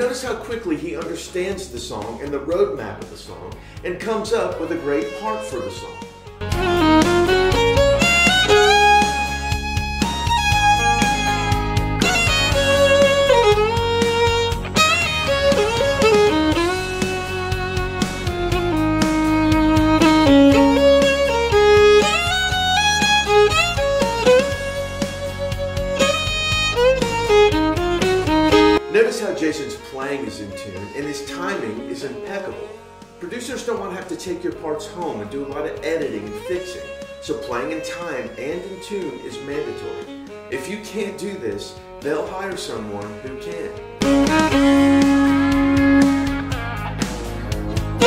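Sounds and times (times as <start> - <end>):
band backing track with guitar: 2.0 - 29.9, 30.5 - 48.0
fiddle playing country melody: 3.4 - 48.0.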